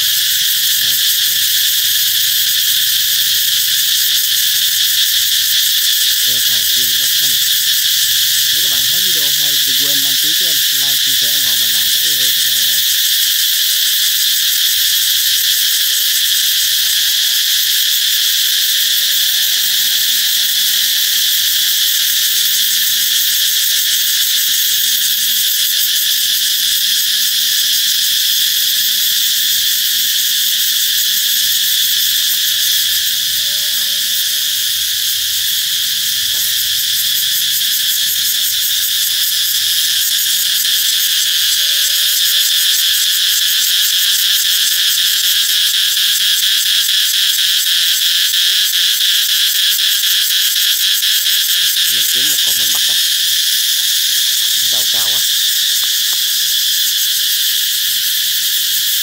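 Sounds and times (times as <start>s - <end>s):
cicadas chorus buzzing: 0.0s - 59.0s.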